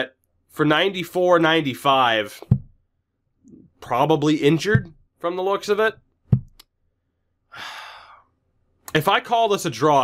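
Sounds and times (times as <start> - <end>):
man sighing: 7.5 - 8.3.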